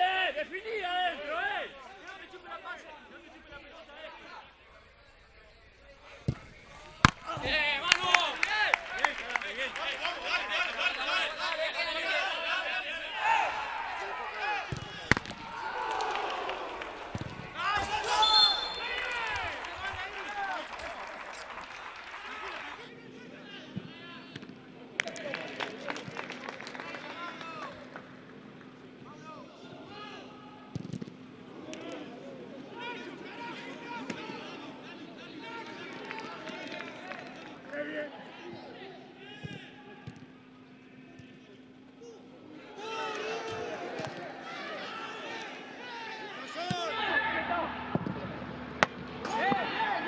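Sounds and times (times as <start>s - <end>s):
football kicked: 6.2s - 7.6s
players shouting: 6.2s - 22.9s, 42.0s - 50.0s
ball being struck: 14.7s - 15.4s.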